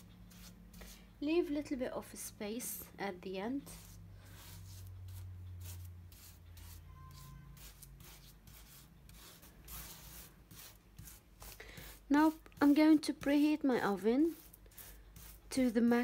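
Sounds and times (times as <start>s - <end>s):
metal spoon scraping pastry: 3.5s - 16.0s.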